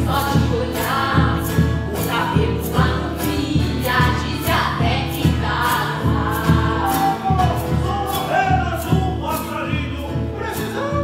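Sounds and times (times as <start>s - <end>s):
voices singing together: 0.0s - 11.0s.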